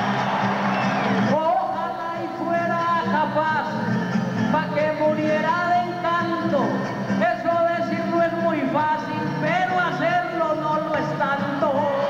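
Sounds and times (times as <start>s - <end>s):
strummed acoustic guitar: 2.2s - 12.0s.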